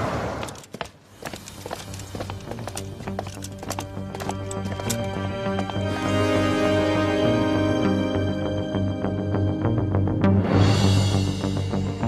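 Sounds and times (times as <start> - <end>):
boot heels on stone paving: 0.3 - 6.1
low sustained background music: 1.8 - 12.0.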